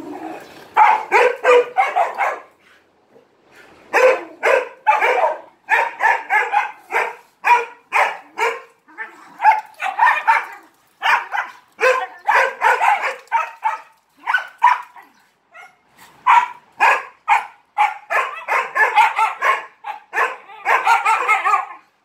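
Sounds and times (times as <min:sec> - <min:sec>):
small dog barking: 0:00.8 - 0:02.5, 0:04.0 - 0:08.7, 0:09.4 - 0:15.0, 0:15.6 - 0:21.8.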